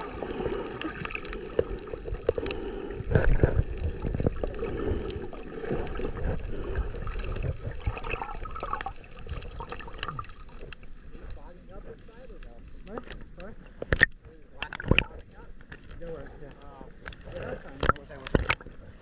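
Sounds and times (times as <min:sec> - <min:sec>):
underwater clicks: 0:00.0 - 0:11.4, 0:12.8 - 0:18.9
underwater rushing and gurgling: 0:00.0 - 0:19.0.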